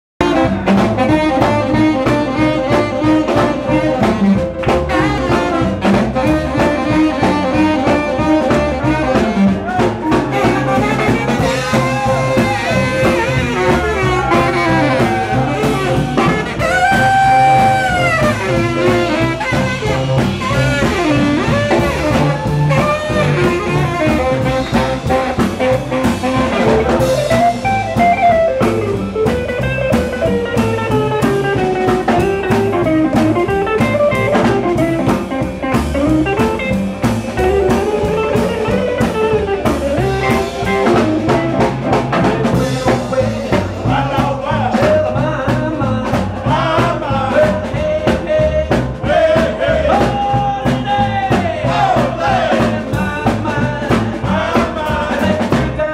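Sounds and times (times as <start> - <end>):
saxophone: 0.2 - 48.4
drums: 0.2 - 55.9
electric guitar: 0.2 - 55.9.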